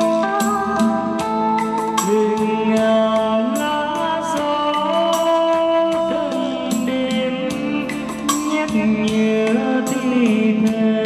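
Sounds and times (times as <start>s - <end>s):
backing track with drums: 0.0s - 11.0s
man singing karaoke: 0.0s - 11.0s.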